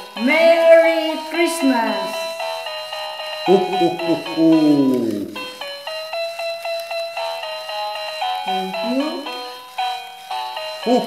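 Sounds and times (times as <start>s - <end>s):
melody of short held notes: 0.0s - 11.0s.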